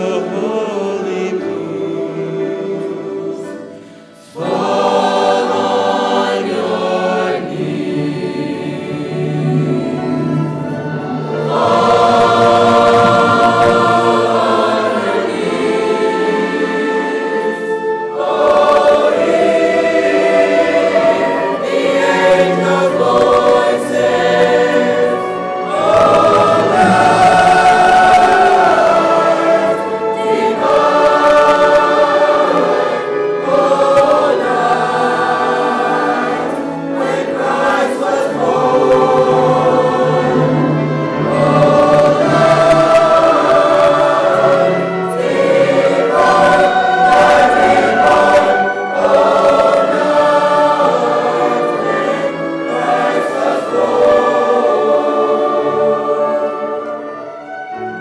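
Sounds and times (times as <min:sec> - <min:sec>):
choir singing: 0:00.0 - 0:58.0
singers breathing: 0:03.7 - 0:04.4.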